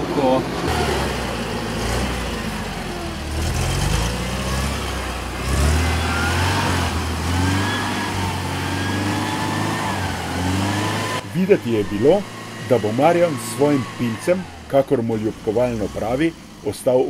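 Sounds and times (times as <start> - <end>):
engine working under load: 0.0 - 17.0.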